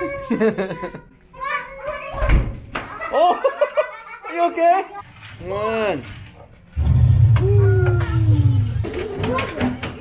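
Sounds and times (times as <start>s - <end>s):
explosion low rumble: 6.8s - 8.8s.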